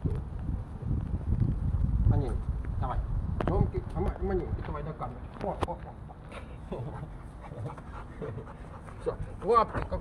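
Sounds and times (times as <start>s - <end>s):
large dog panting: 6.8s - 10.0s.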